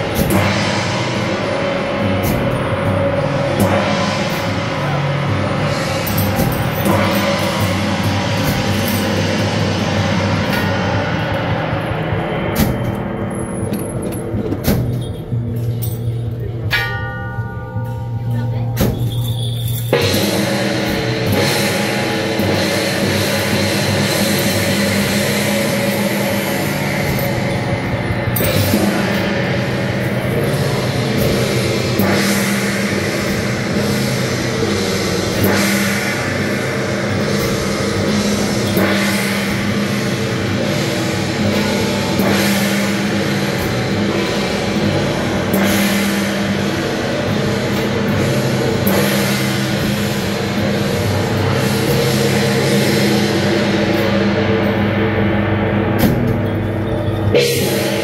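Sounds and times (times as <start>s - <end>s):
loud music with drums and cymbals: 0.0s - 58.0s.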